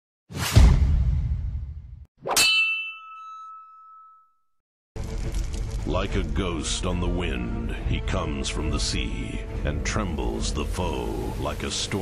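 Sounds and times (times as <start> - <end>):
sharp metallic clang: 2.3 - 4.3.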